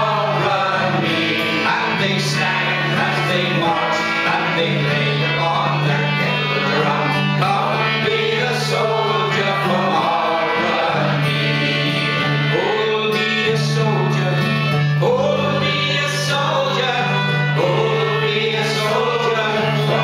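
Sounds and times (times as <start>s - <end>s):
concertina: 0.0s - 20.0s
strummed acoustic guitar: 0.0s - 20.0s
voices singing: 0.0s - 20.0s.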